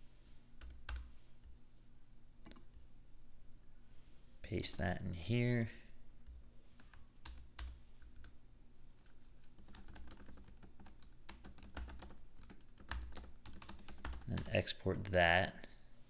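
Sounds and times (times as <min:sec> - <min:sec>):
typing on computer keyboard: 0:06.8 - 0:08.3, 0:09.0 - 0:15.2.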